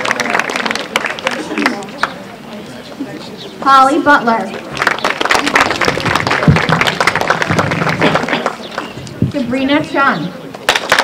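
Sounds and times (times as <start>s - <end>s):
audience applauding: 0.0s - 2.2s, 4.5s - 9.1s, 10.7s - 11.0s.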